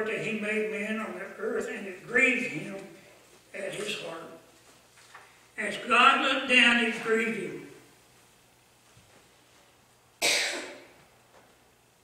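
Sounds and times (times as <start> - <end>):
person coughing: 10.2 - 10.9.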